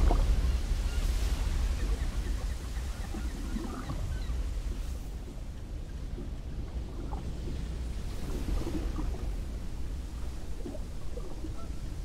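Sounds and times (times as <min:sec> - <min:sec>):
wind and open water rumble: 0:00.0 - 0:12.0.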